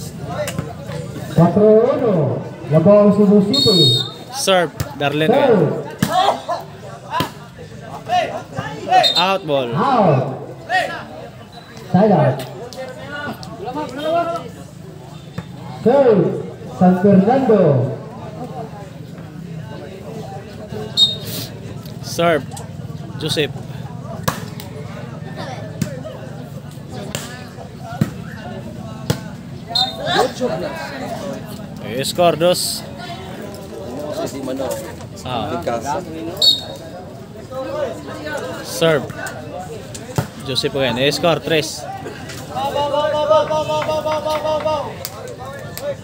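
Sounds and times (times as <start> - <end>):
crowd voices and shouts: 0.0 - 46.0.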